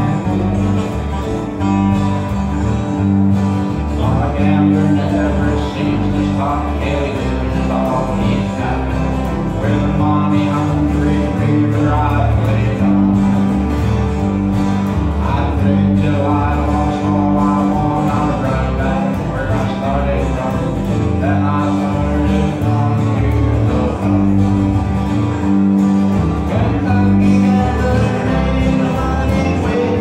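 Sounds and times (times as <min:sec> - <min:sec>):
acoustic country band playing: 0:00.0 - 0:30.0
bass notes: 0:00.0 - 0:30.0
lead acoustic guitar picking: 0:00.0 - 0:30.0.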